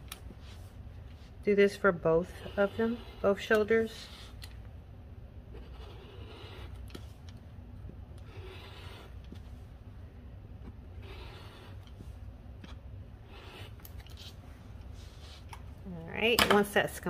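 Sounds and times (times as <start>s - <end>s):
rotary cutter rasping through fabric: 1.8s - 4.5s, 5.5s - 7.1s, 8.2s - 9.4s, 10.8s - 12.0s, 13.2s - 14.3s.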